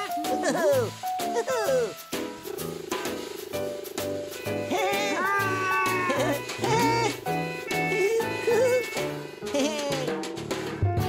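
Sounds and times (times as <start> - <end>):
cartoon background music: 0.0 - 11.0
cartoon vocal sliding in pitch: 4.7 - 7.2.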